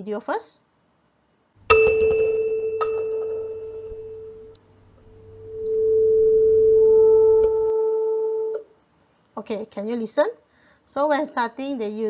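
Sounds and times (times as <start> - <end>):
mallet striking tuning fork: 1.7 - 5.6
tuning fork ringing pure tone: 1.7 - 8.6.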